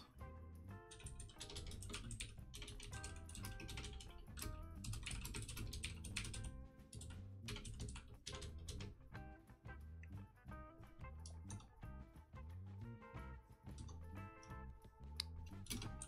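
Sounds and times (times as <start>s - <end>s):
quiet background music: 0.0s - 16.0s
keyboard typing clicks: 0.9s - 8.9s, 15.2s - 16.0s.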